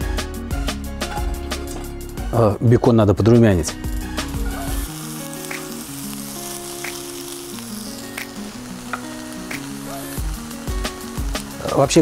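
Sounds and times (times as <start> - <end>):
background music of held notes: 0.0 - 12.0
bacon sizzling in a pan: 3.8 - 12.0
fat popping: 6.8 - 7.0, 8.2 - 10.1.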